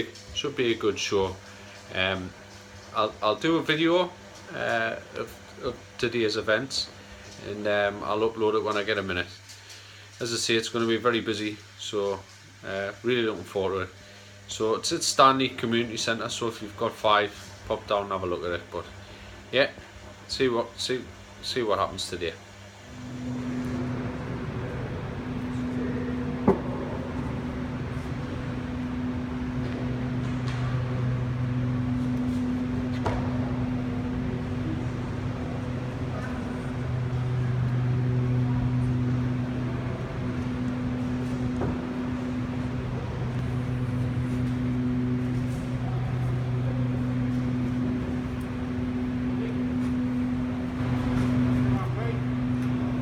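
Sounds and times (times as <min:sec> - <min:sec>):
low mechanical hum: 0:00.0 - 0:53.0.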